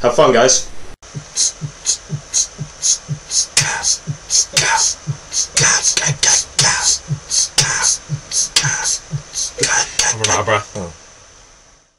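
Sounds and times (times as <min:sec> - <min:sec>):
man beatboxing: 0:01.0 - 0:10.9.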